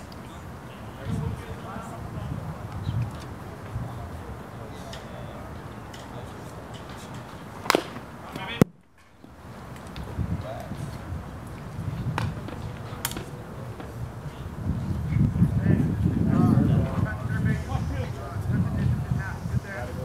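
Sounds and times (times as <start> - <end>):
faint distant voices: 0.0 - 20.0.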